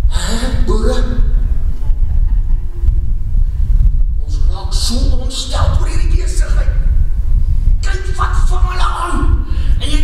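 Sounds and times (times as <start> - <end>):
loud steady low rumble: 0.0 - 10.0.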